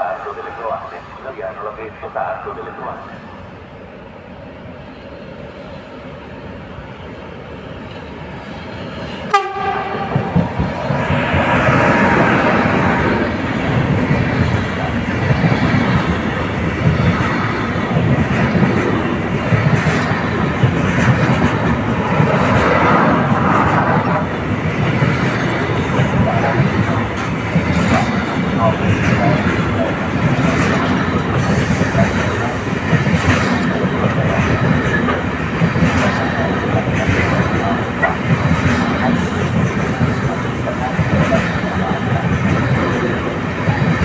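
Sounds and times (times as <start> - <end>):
train wheels rumbling and clacking: 6.9 - 44.0
locomotive horn blast: 9.3 - 10.3.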